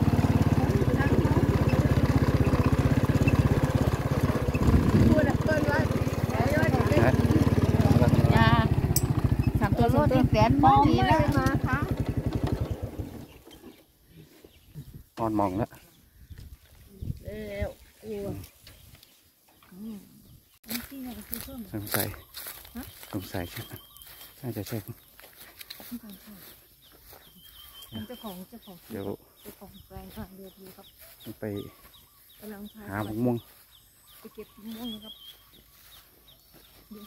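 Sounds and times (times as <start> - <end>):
small engine puttering: 0.0 - 13.9
bird chirping: 12.4 - 37.0.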